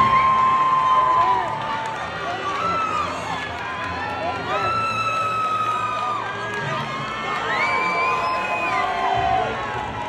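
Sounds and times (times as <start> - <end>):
audience shouting and cheering: 0.0 - 10.0.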